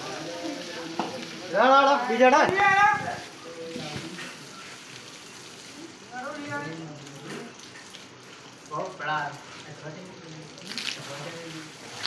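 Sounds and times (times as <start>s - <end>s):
water spraying from hose: 0.0s - 12.0s.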